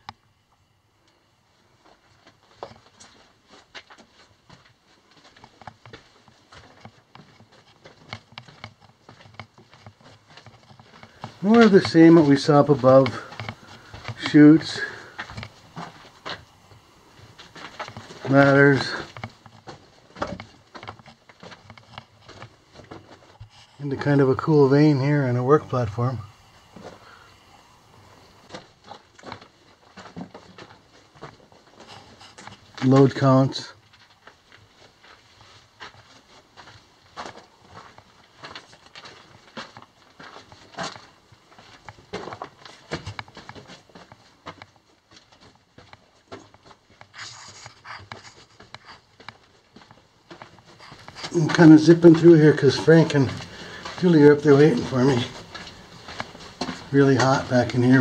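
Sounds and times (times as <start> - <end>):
footsteps on loose rock: 2.4 - 23.5, 33.8 - 58.0
person panting: 14.8 - 15.4, 53.3 - 54.0.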